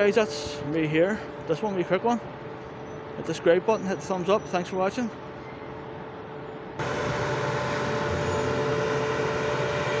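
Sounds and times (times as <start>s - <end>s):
loud vehicle-like drone: 5.2s - 10.0s.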